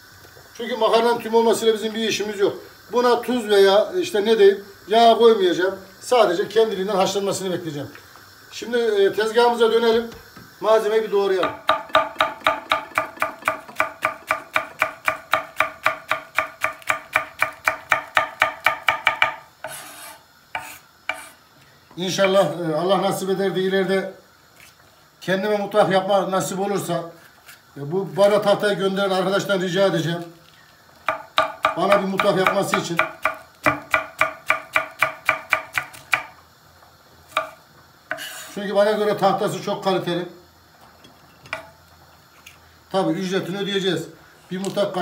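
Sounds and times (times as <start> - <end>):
knife chopping on wooden board: 11.4 - 21.4, 31.0 - 36.3, 37.3 - 38.6.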